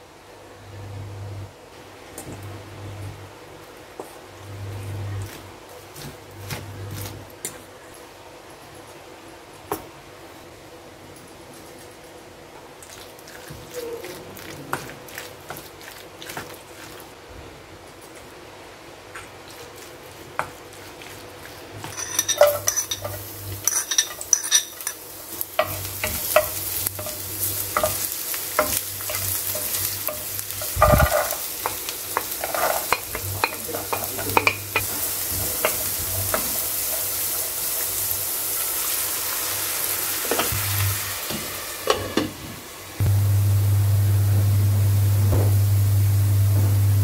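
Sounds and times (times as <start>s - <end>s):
vegetables sizzling in oil: 19.4s - 47.0s
spatula scraping and tapping: 21.8s - 37.0s
spoon stirring batter in metal bowl: 21.9s - 25.0s
heavy thump: 45.3s - 45.6s.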